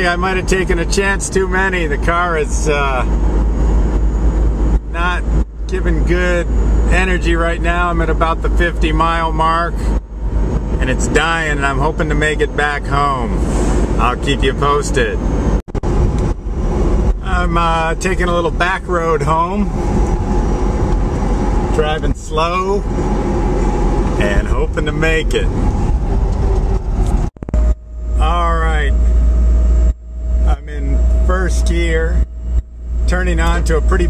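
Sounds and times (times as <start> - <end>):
road and wind noise in car cabin: 0.0 - 34.0
thin steady whine: 0.0 - 34.0.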